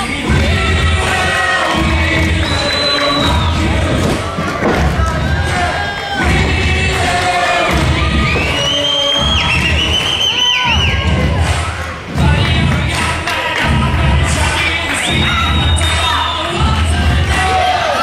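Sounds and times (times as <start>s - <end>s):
crowd cheering: 0.0s - 18.0s
music with heavy beat: 0.0s - 18.0s.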